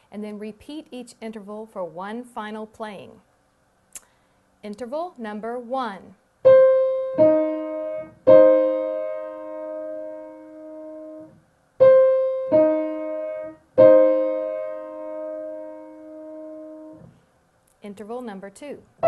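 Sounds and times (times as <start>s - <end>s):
piano playing interval: 6.4s - 17.2s.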